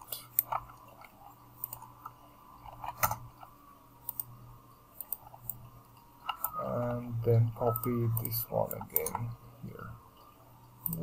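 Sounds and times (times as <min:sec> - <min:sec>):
computer mouse clicks: 0:00.0 - 0:04.3, 0:05.0 - 0:06.6, 0:07.7 - 0:09.4, 0:10.8 - 0:11.0
faint steady hum: 0:00.0 - 0:11.0.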